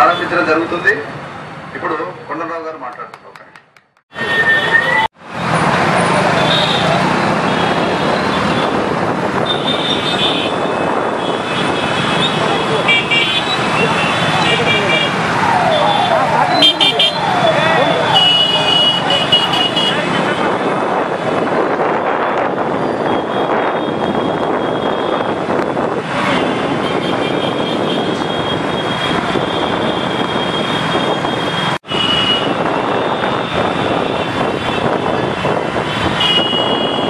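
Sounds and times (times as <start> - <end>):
horns honking: 9.4 - 20.6, 26.2 - 35.2, 35.9 - 37.0.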